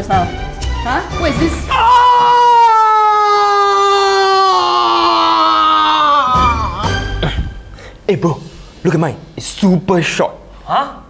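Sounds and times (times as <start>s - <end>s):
young man screaming in pain: 1.7s - 7.4s.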